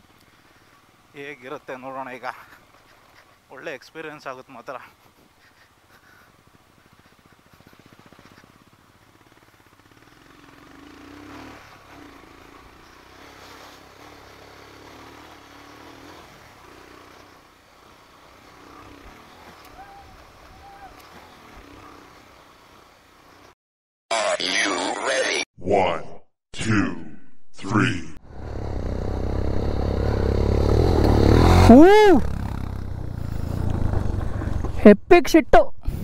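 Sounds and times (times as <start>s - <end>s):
motorcycle engine running: 4.8s - 23.5s, 28.2s - 34.8s.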